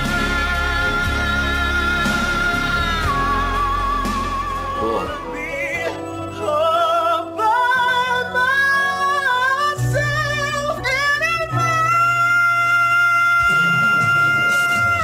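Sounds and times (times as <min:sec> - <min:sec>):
man singing high notes: 0:00.0 - 0:15.0.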